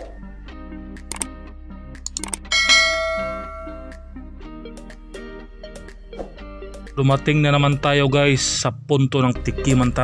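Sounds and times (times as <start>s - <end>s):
background music: 0.0s - 10.0s
quick clicks: 1.1s - 1.3s, 2.0s - 2.5s
loud bell ding: 2.5s - 4.1s.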